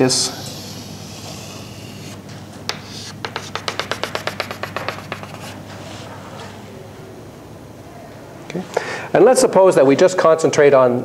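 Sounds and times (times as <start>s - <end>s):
chalk scraping on blackboard: 0.2s - 6.1s
chalk tapping on blackboard: 0.4s - 5.6s.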